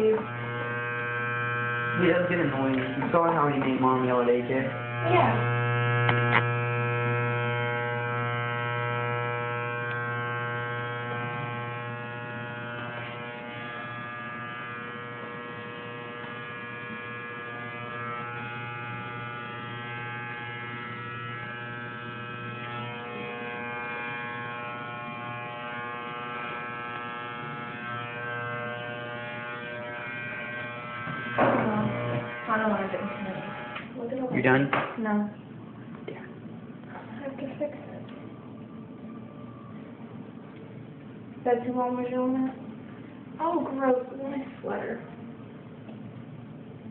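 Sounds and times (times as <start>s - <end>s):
electric hair clippers buzzing: 0.0s - 34.8s.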